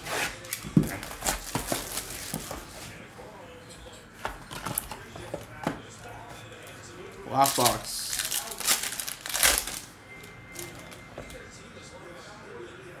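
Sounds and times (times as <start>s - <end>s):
foil pack rustling: 0.0s - 2.9s, 7.3s - 9.9s.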